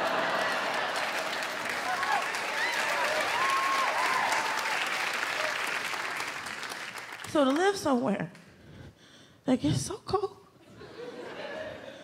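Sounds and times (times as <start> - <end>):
audience laughing: 0.0 - 2.0, 10.7 - 12.0
audience applauding: 0.0 - 7.8.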